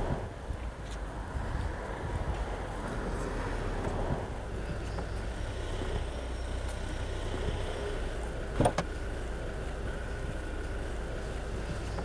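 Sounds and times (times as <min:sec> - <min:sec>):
traffic rumble: 0:00.0 - 0:12.0
car door latch clicks: 0:08.6 - 0:08.9.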